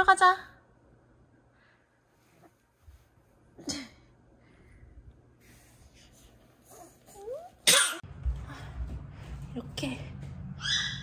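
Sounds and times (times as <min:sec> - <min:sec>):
baby cough-like burst: 0:07.6 - 0:08.0.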